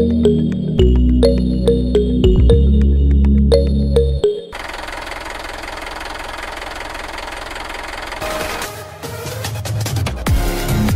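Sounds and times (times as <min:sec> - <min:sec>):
small motor buzzing rattle: 0:04.5 - 0:08.7.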